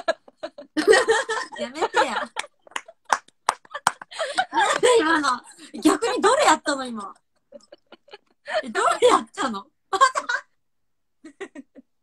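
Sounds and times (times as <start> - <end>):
women laughing: 0.0 - 5.0, 7.5 - 8.8, 9.9 - 10.5, 11.2 - 11.9.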